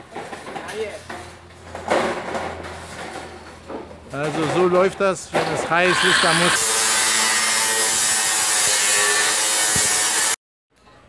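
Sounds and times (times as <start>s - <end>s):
angle grinder cutting metal sheet: 5.5s - 10.4s.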